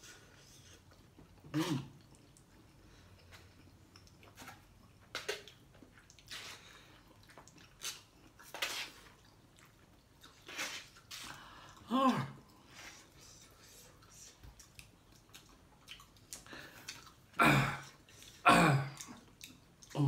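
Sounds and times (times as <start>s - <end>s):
person chewing noodles: 0.0s - 20.0s.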